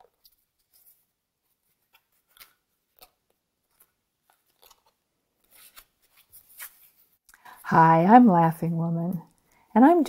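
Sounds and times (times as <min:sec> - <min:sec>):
cards being shuffled: 0:00.0 - 0:07.2.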